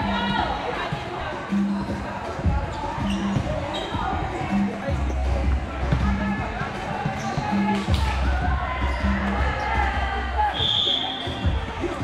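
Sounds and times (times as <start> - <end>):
people talking: 0.0 - 12.0
background music with bass: 1.3 - 12.0
volleyballs bouncing on gym floor: 1.8 - 10.1.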